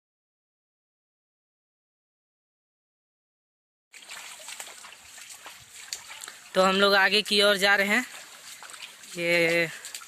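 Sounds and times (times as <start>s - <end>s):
stream trickling over rocks: 3.9s - 10.0s.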